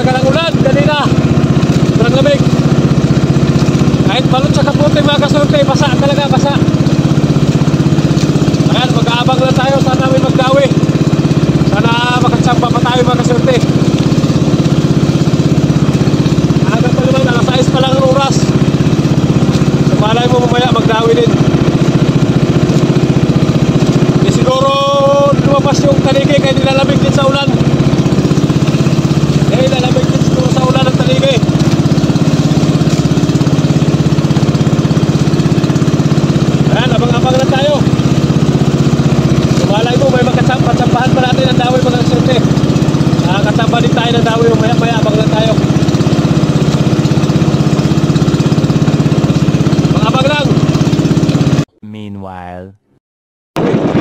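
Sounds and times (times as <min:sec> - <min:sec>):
man talking: 0:00.0 - 0:01.2, 0:01.9 - 0:02.5, 0:04.0 - 0:06.7, 0:08.6 - 0:10.8, 0:11.7 - 0:13.7, 0:16.6 - 0:18.5, 0:19.9 - 0:21.4, 0:24.2 - 0:27.6, 0:29.4 - 0:31.5, 0:39.6 - 0:42.5, 0:51.8 - 0:52.8
boat engine running: 0:00.0 - 0:51.8, 0:53.6 - 0:54.0.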